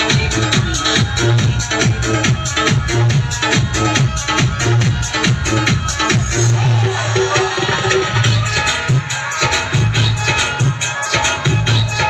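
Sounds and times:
deep bass: 0:00.0 - 0:07.0
loud dance music: 0:00.0 - 0:12.0
steady drum beat: 0:00.0 - 0:12.0.

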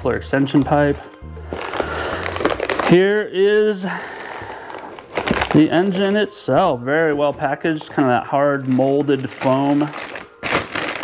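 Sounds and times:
plastic bags crinkling: 0:00.4 - 0:11.0.

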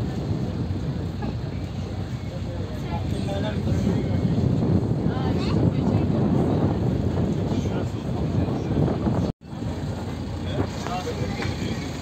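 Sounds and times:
boat engine running: 0:00.0 - 0:12.0
wind on microphone: 0:00.0 - 0:12.0.

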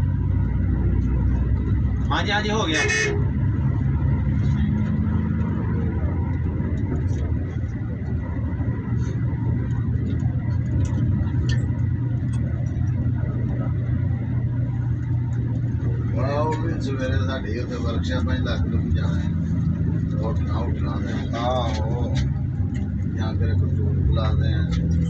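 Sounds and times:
vehicle engine hum and road noise: 0:00.0 - 0:25.0.

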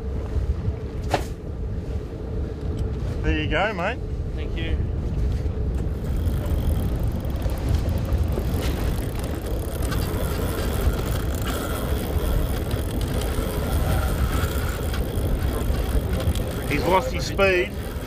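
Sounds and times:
boat noise on water: 0:00.0 - 0:18.0
wind rumble: 0:00.0 - 0:18.0
faint thin whine: 0:05.3 - 0:18.0.

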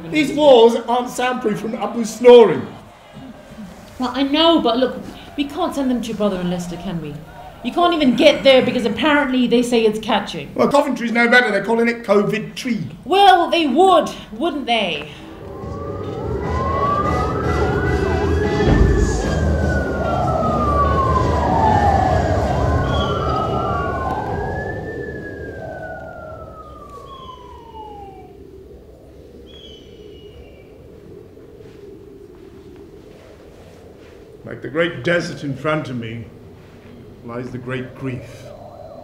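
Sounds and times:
traffic rumble: 0:11.8 - 0:29.6
emergency vehicle siren wailing: 0:15.0 - 0:29.4
thump: 0:18.6 - 0:19.8.

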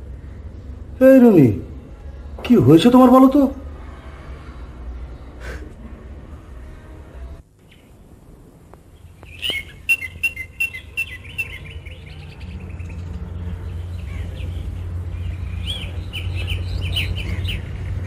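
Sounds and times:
small birds chirping: 0:08.8 - 0:18.0.

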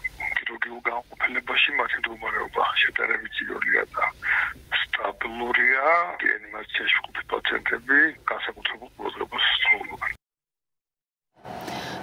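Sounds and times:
man talking over telephone: 0:00.2 - 0:10.2.

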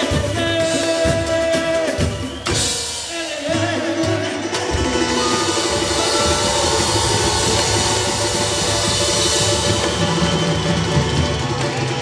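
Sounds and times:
drum kit and cymbals: 0:00.0 - 0:12.0
samba band playing fast beat: 0:00.0 - 0:12.0.

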